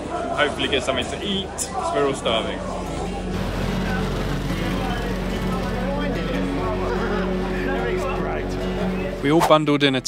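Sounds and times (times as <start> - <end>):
people's voices: 0.0 - 10.0
background music: 1.7 - 10.0
motorbike engines: 2.6 - 9.2.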